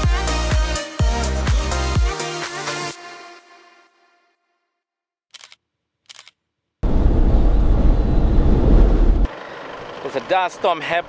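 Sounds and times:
short clicks: 5.3 - 6.4
strong wind buffeting microphone: 6.8 - 9.3.

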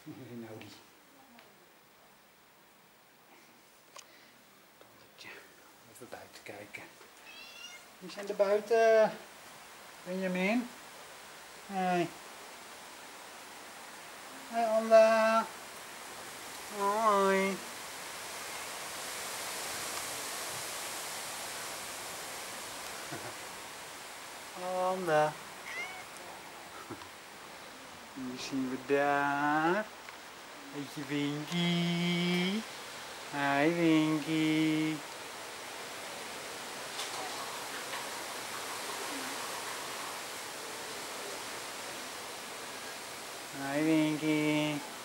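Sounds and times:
cat meowing: 7.2 - 7.9, 25.6 - 26.2.

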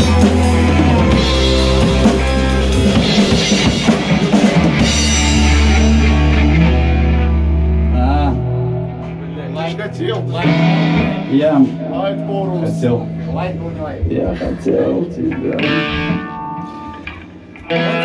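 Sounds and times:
drum kit with cymbals: 0.0 - 6.6
bass guitar: 0.0 - 18.0
electric guitars: 0.0 - 18.0
ringing guitar notes: 10.4 - 18.0.

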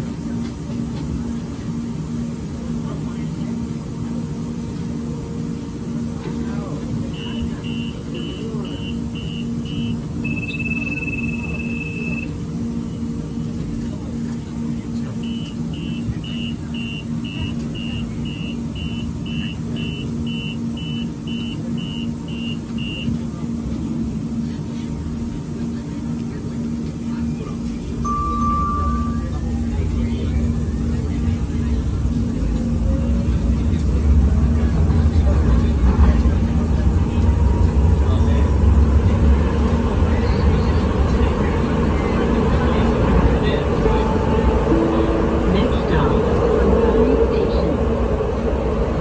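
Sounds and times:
crowd voices: 0.0 - 49.0
door warning beeps: 7.2 - 12.3, 15.2 - 23.2
low pulsing tone: 28.0 - 30.8.

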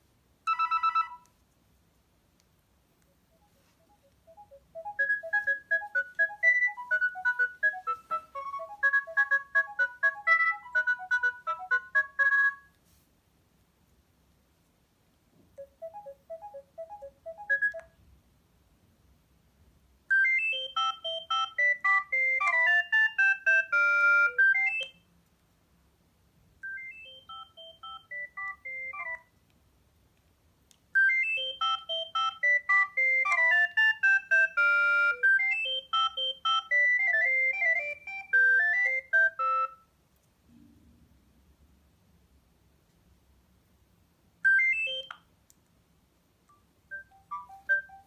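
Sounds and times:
mobile phone ringtone melodies: 0.5 - 1.3, 3.2 - 12.8, 15.6 - 18.0, 20.1 - 25.0, 26.6 - 29.3, 31.0 - 39.8, 44.4 - 45.2, 46.9 - 48.0.

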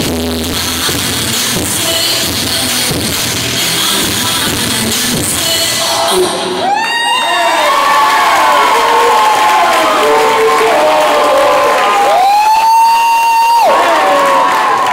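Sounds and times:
audience cheering and screaming: 5.8 - 14.9
long high scream: 6.5 - 14.9.

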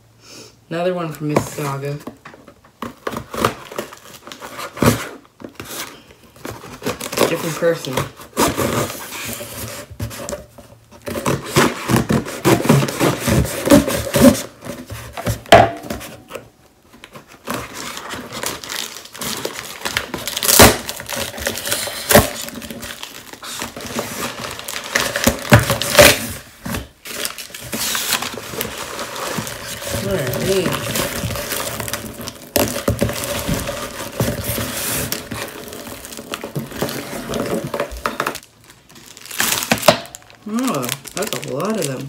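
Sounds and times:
packing tape ripping: 2.8 - 10.3, 11.0 - 42.0
cardboard flaps rustling and scraping: 2.8 - 38.4.

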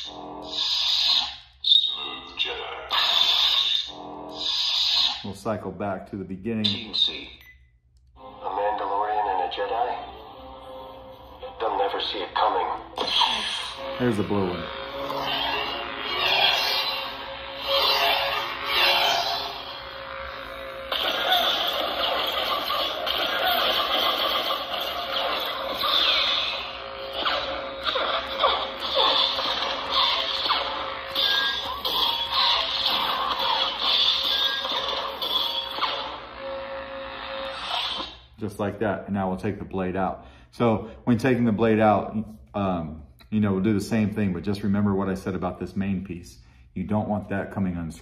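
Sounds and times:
lightsaber electric hum: 0.0 - 7.4, 8.0 - 40.0.

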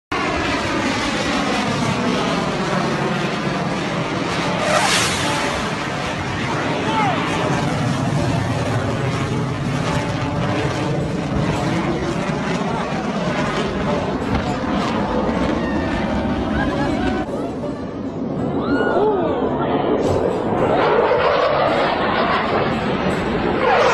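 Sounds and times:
fighter jet flying overhead: 0.1 - 23.9.

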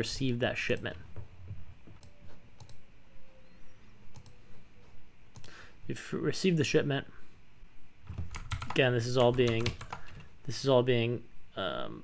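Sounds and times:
computer mouse clicks: 2.0 - 2.8, 4.1 - 4.4, 5.3 - 5.6.

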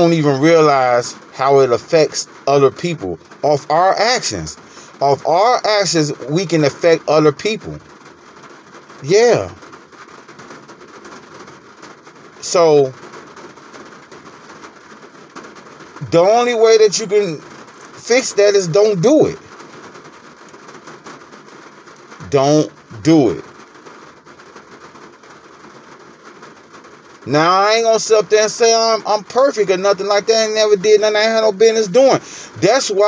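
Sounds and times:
low background noise: 0.0 - 33.0
steady low background hiss: 0.0 - 33.0.

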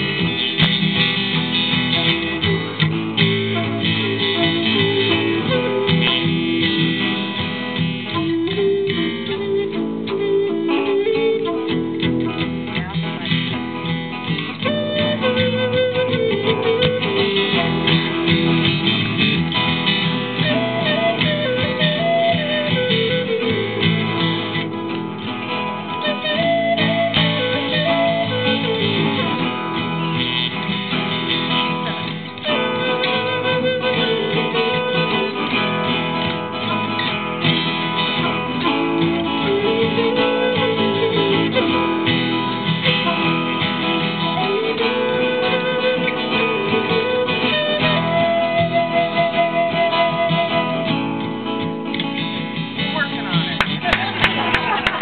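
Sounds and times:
flute playing long notes: 0.0 - 12.8, 14.5 - 51.7
acoustic guitars strumming: 0.0 - 55.0.

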